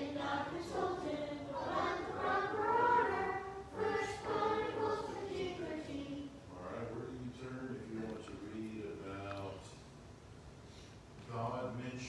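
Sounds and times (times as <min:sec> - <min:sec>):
children reciting in unison: 0:00.0 - 0:06.3.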